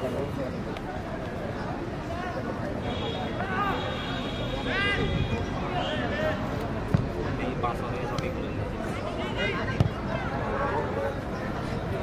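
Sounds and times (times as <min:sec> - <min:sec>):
players and spectators shouting: 0:02.8 - 0:06.5
football being kicked: 0:06.9 - 0:07.2, 0:09.8 - 0:10.0.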